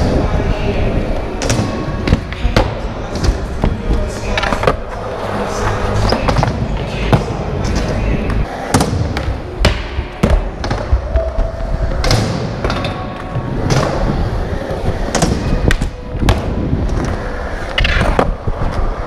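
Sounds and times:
skateboard wheels rolling: 10.2s - 19.0s.

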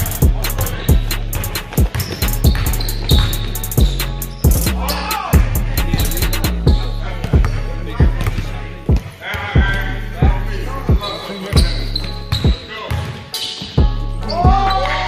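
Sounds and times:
background music with bass line: 0.0s - 12.6s, 13.8s - 15.0s
sneakers squeaking: 0.0s - 15.0s
basketball bouncing on wooden floor: 1.7s - 4.0s, 6.7s - 9.8s, 11.5s - 14.6s.

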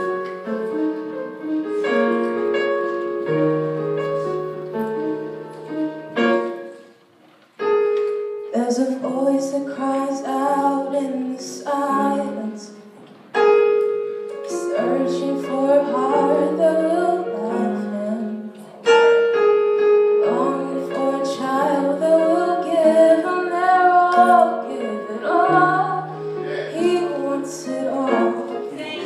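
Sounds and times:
keyboard piano chords: 0.0s - 29.0s
woman singing into a microphone: 8.5s - 12.9s, 14.5s - 18.7s, 20.2s - 29.0s.

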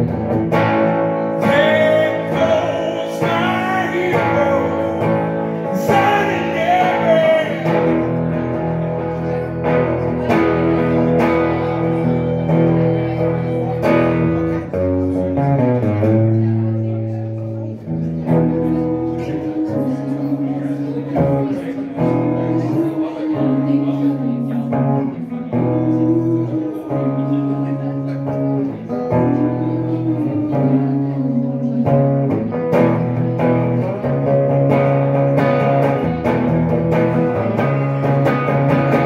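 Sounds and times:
electric guitar strumming chords: 0.0s - 39.0s.

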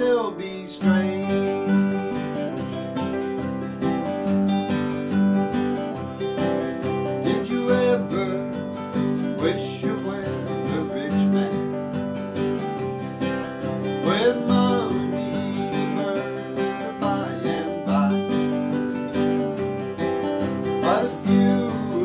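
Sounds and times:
acoustic guitars strumming chords: 0.0s - 22.0s
guitar melody: 0.0s - 22.0s.

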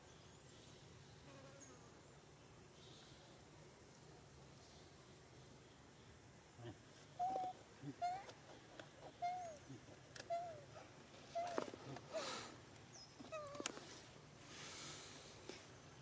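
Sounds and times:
faint hiss: 0.0s - 16.0s
baby monkey coo calls: 7.2s - 10.7s.

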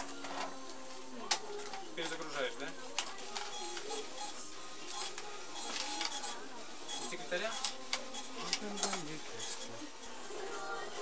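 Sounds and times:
music playing: 0.0s - 11.0s
shop till clicking and whirring: 0.0s - 11.0s.

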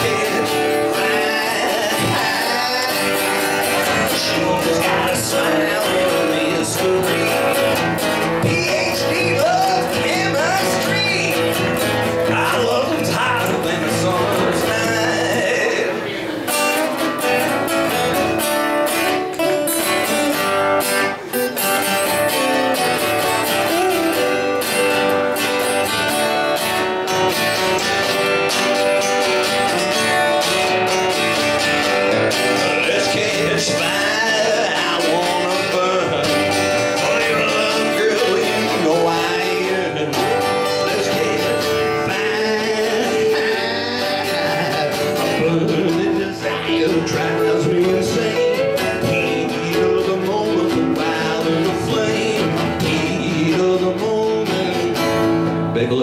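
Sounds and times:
acoustic guitar playing along: 0.0s - 56.0s
acoustic guitar strumming chords: 0.0s - 56.0s.

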